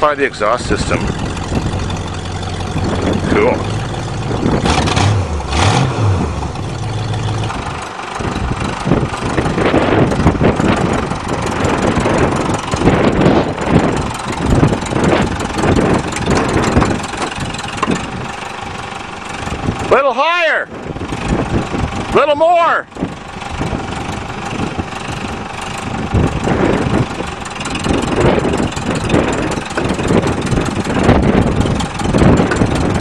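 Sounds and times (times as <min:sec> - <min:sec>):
tractor engine under load: 0:00.0 - 0:33.0.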